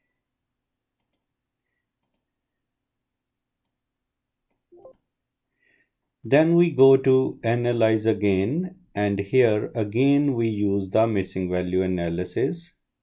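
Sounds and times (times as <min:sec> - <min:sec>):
computer mouse clicks: 0:01.0 - 0:01.3, 0:02.0 - 0:02.3, 0:04.5 - 0:05.1.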